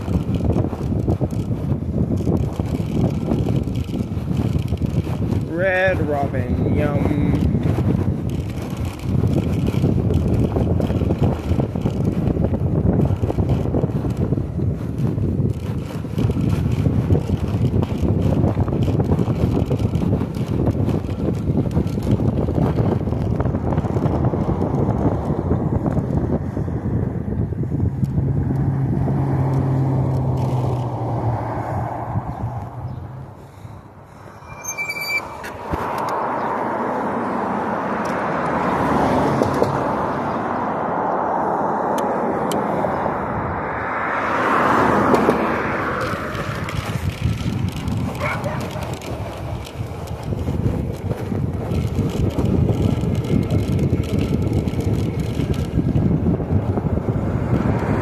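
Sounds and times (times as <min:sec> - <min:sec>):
road noise: 0:00.0 - 0:58.0
wind buffeting microphone: 0:00.0 - 0:58.0
high-pitched squeal: 0:33.9 - 0:36.6.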